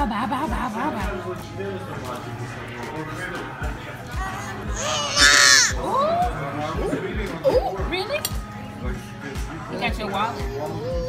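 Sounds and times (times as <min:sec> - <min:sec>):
background music with steady beat: 0:00.0 - 0:11.0
baby squealing: 0:04.7 - 0:05.8.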